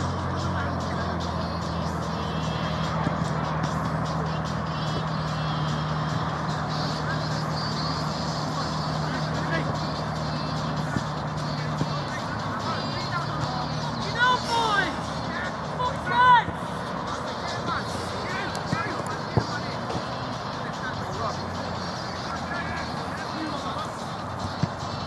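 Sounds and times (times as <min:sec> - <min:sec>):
players calling out: 0:00.0 - 0:25.0
ball being kicked: 0:18.6 - 0:20.1, 0:24.4 - 0:24.8.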